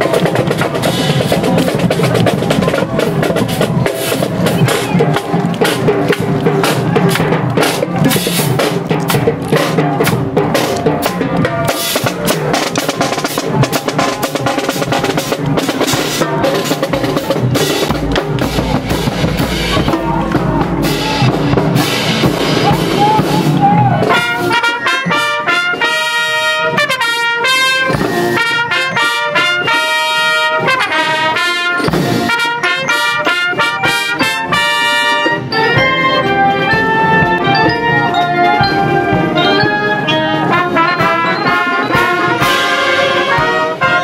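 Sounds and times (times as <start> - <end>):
marching band playing: 0.0 - 44.0
trumpets playing melody: 11.6 - 44.0.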